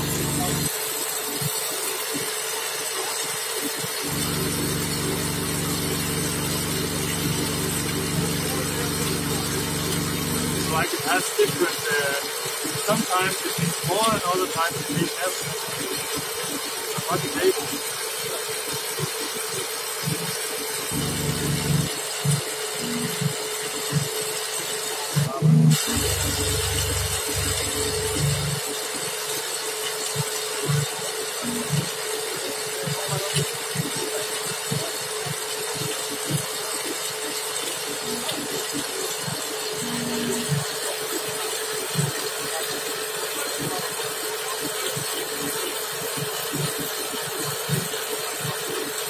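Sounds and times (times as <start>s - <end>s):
machine hum with hiss: 0.0s - 49.0s.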